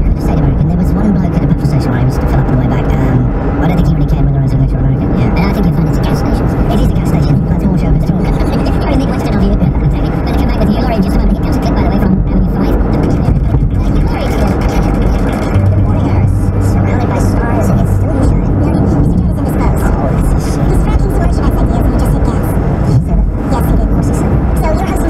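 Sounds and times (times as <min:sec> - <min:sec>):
road and engine rumble: 0:00.0 - 0:25.0
voice from car radio: 0:00.0 - 0:25.0.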